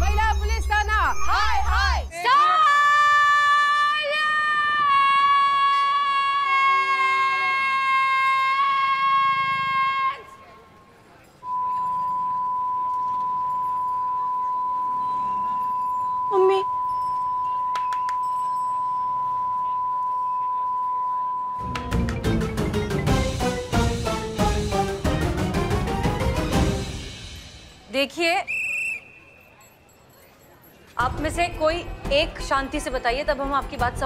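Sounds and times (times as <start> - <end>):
steady pure ringing tone: 11.4 - 21.6.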